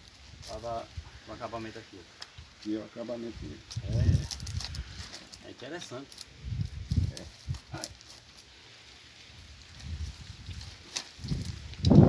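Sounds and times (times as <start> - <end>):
wooden stakes clicking and knocking: 2.1 - 2.8, 3.6 - 8.5, 9.7 - 12.0.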